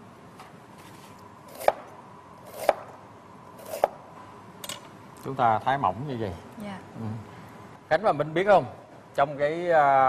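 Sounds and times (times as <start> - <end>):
knife cutting on cutting board: 1.5 - 1.8, 2.5 - 2.9, 3.6 - 4.0.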